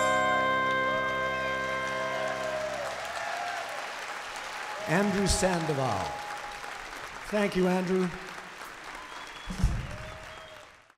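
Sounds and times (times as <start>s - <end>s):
audience applauding: 0.0s - 10.9s.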